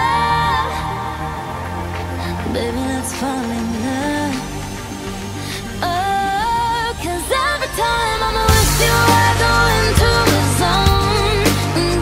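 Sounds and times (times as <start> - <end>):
pop song with electronic backing: 0.0 - 12.0.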